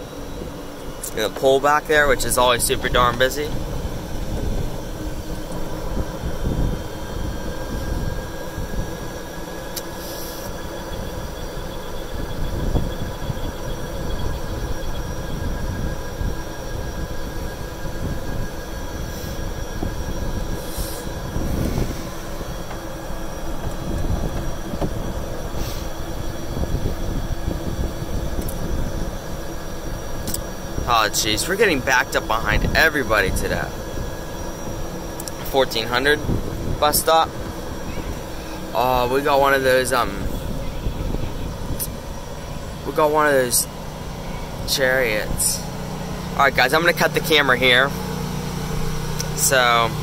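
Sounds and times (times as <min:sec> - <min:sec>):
golf cart drivetrain whine: 0:00.0 - 0:50.0
tyres rumbling on road: 0:00.0 - 0:50.0.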